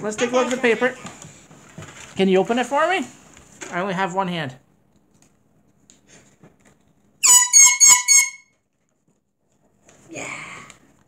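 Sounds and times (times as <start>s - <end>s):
paper rustling: 0.2s - 3.7s.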